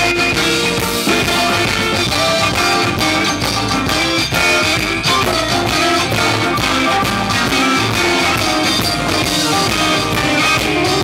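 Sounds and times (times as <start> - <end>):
drum kit: 0.0 - 11.0
electric guitar: 0.0 - 11.0
keyboard: 0.0 - 11.0.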